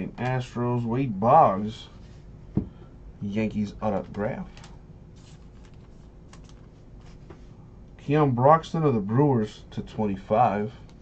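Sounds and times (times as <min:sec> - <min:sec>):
cards and plastic sleeves rustling: 0:03.9 - 0:07.5.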